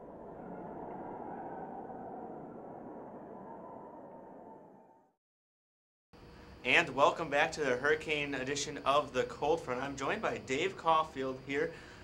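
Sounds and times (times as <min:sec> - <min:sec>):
car road noise: 0:00.0 - 0:02.9.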